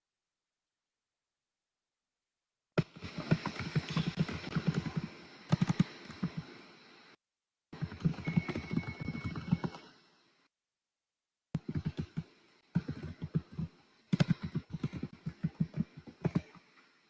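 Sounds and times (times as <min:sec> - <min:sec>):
keyboard typing clicks: 0:03.4 - 0:06.4, 0:07.8 - 0:09.9, 0:11.6 - 0:16.6.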